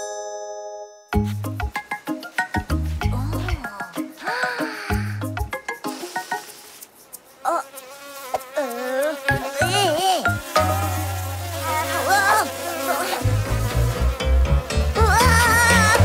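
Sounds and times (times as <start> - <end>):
cartoon bees buzzing: 3.3 - 16.0.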